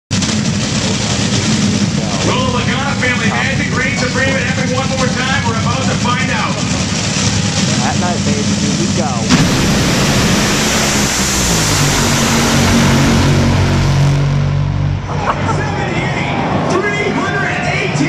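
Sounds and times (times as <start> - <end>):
dragster engine rumbling: 0.1 - 18.0
person talking: 7.7 - 9.3.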